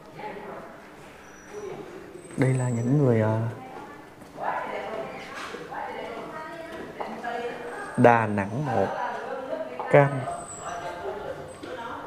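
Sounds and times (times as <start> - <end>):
indistinct voices talking: 7.4 - 9.0, 9.7 - 12.0.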